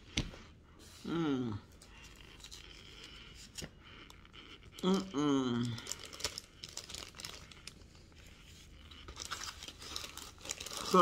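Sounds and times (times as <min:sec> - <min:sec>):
person humming: 0:01.0 - 0:01.7, 0:04.8 - 0:05.9
plastic bag crinkling: 0:05.6 - 0:11.0.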